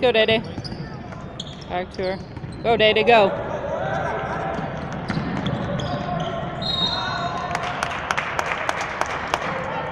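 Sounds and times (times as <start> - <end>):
voices in a large hall: 0.0 - 9.9
basketball bouncing on hardwood: 2.2 - 2.7.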